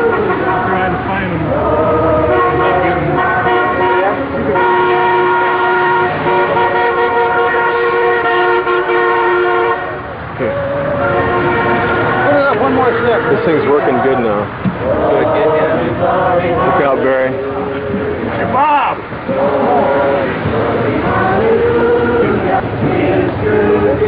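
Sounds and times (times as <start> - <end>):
group singing long notes: 0.0 - 24.0.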